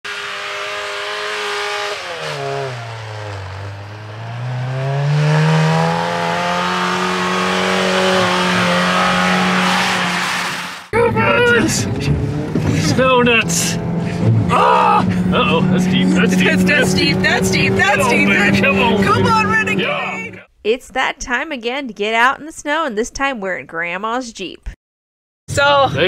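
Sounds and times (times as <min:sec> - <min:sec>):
car engine revving: 0:00.0 - 0:20.5
tires spinning through snow: 0:00.1 - 0:20.0.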